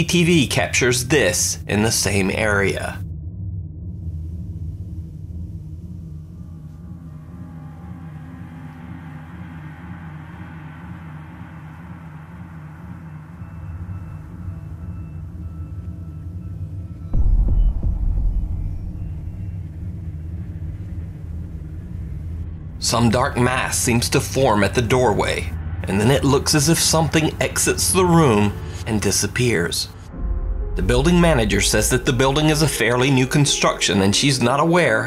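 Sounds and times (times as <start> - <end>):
low rumbling drone: 1.9 - 34.7
deep boom: 17.1 - 22.5, 30.1 - 33.8.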